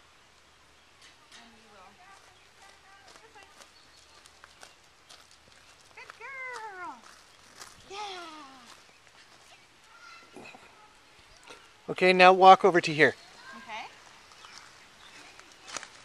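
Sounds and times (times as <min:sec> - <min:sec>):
footsteps on gravel: 0:02.1 - 0:10.0, 0:12.7 - 0:16.0.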